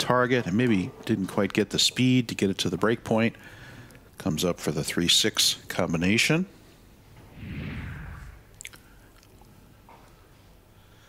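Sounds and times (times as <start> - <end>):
low rumble: 7.2 - 8.7.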